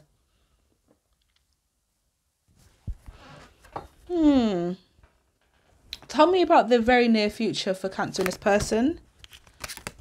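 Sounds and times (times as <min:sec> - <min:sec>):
cards being shuffled: 0:08.2 - 0:10.0.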